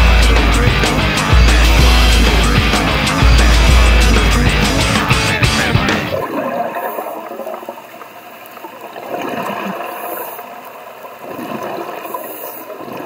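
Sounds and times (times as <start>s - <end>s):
underwater bubbles gurgling: 6.1s - 13.0s.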